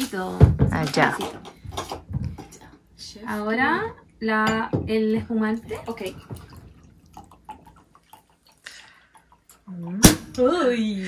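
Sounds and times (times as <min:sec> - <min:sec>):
liquid trickling into a glass: 0:05.4 - 0:09.8.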